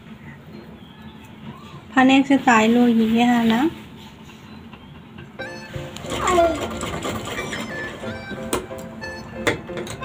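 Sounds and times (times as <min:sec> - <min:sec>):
background music: 0:05.4 - 0:10.0
sewing machine running: 0:05.8 - 0:08.1.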